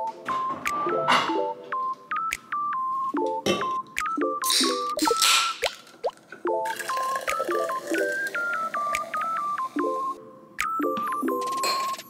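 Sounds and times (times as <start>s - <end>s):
plinky beeping background music: 0.0s - 5.8s, 6.4s - 12.0s
fizzy soda pouring into glass: 6.6s - 9.6s.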